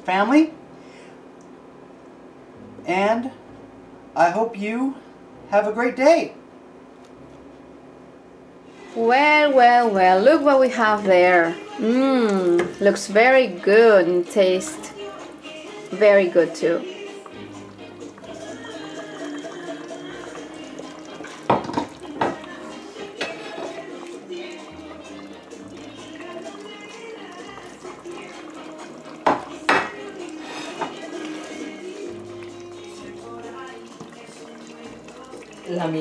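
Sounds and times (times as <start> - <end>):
background music: 10.0 - 36.0.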